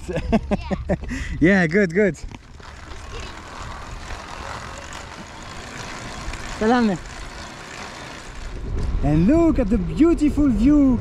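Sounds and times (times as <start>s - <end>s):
road noise from moving trike: 0.0s - 11.0s
wind on microphone: 8.4s - 11.0s.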